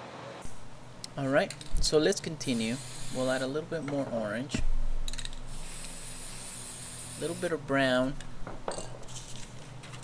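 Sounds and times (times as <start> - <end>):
spray can hissing: 2.5 - 3.5, 5.5 - 7.6.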